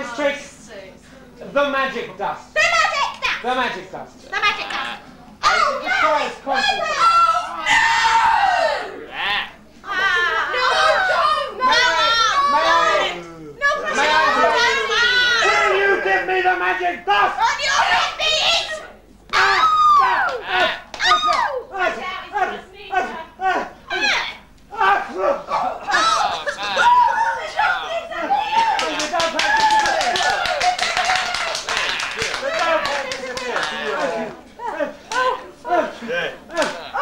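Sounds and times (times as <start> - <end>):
shrill voice crying out: 17.4 - 21.6.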